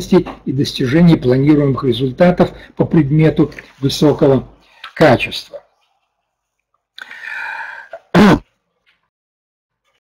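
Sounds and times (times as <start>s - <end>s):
man clearing his throat: 8.0s - 8.6s.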